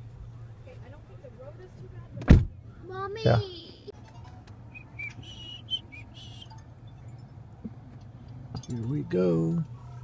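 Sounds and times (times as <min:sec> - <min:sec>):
high chirping whistle notes: 0:04.7 - 0:06.6.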